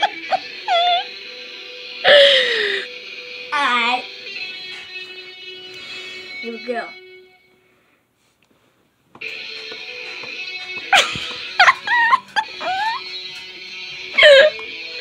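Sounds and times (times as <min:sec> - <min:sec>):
guitar chords: 0:09.2 - 0:15.0
high sliding yelps: 0:11.6 - 0:13.1.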